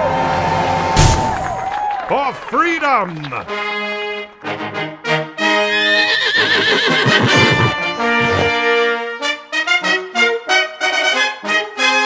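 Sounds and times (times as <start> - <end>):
brass fanfare music: 3.3 - 12.0
hoofbeats: 5.6 - 8.6
horse neighing: 5.7 - 8.6.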